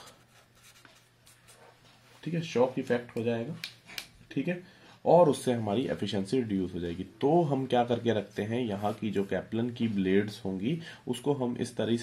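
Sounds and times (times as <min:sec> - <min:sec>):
marker pen scratching on paper: 0:00.0 - 0:01.8.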